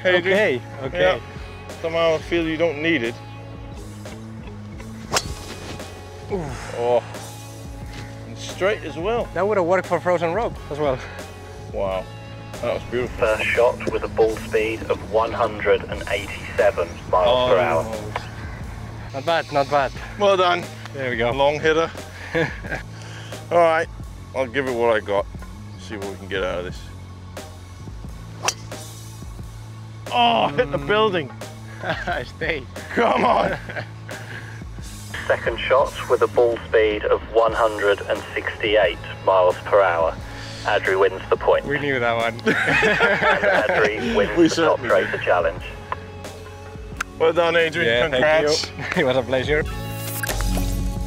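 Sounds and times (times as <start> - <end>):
background music: 0.0 - 51.0
golf club striking ball: 4.7 - 6.0, 28.4 - 29.0.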